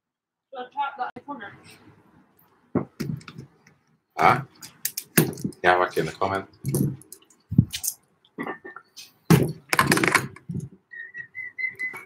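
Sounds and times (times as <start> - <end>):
person whistling short notes: 10.9 - 12.0.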